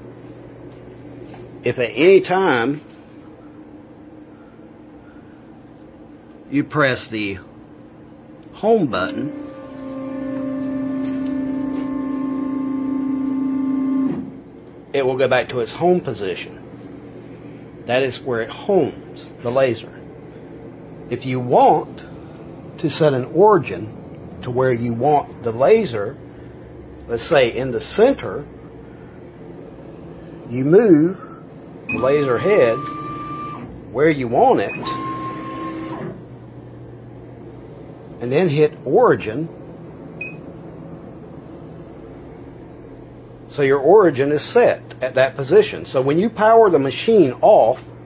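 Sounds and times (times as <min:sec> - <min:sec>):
low machine hum: 0:00.0 - 0:48.0
stepper motors whining: 0:31.9 - 0:33.7.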